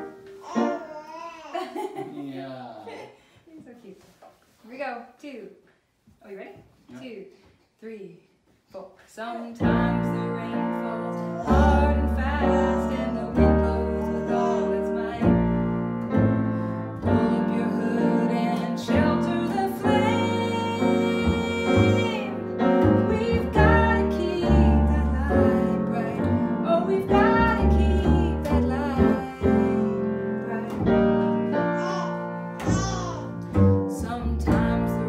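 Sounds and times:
piano: 0.0 - 1.3, 9.6 - 35.0
woman singing: 9.5 - 15.7, 17.0 - 22.4, 23.0 - 31.4, 33.9 - 35.0
double bass: 11.4 - 31.6, 32.6 - 35.0.

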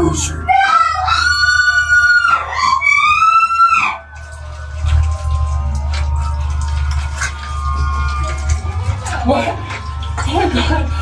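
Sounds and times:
low droning ambient soundtrack: 0.0 - 11.0
high-pitched wavering screams: 0.5 - 10.2.

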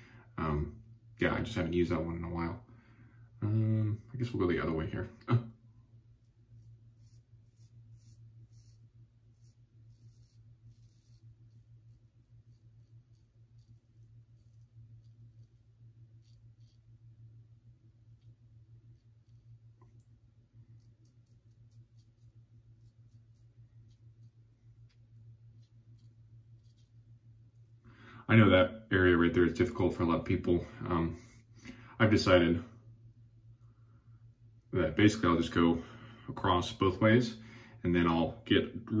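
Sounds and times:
low steady hum: 0.0 - 39.0
razor scratching stubble: 6.2 - 17.2, 18.2 - 27.1.

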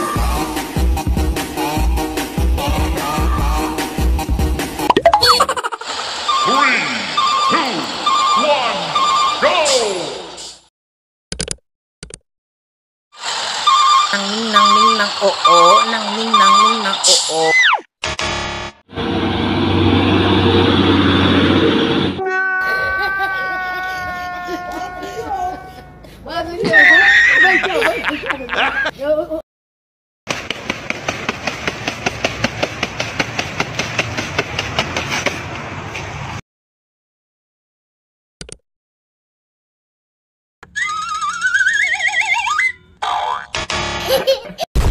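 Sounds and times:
clicking sound effects: 4.9 - 5.5
rapid sharp knocking: 30.3 - 35.4.

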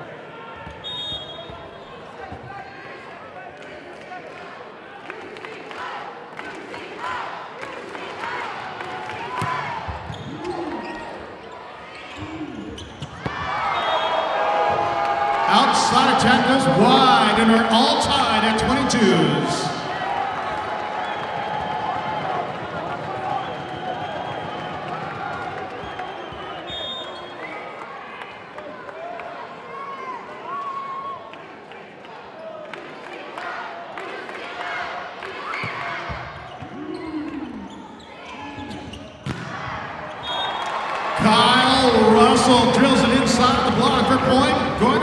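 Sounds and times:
crowd cheering: 0.0 - 38.6, 39.3 - 45.0
murmur of spectator voices: 15.4 - 20.0.

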